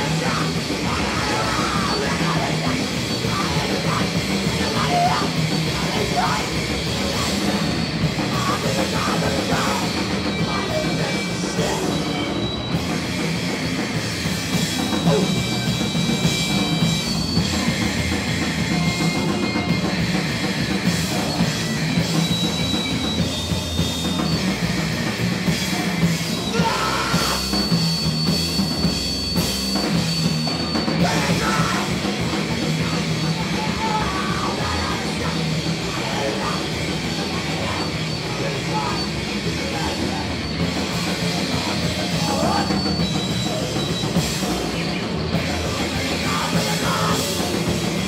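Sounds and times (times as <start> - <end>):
live punk band playing: 0.0 - 48.0.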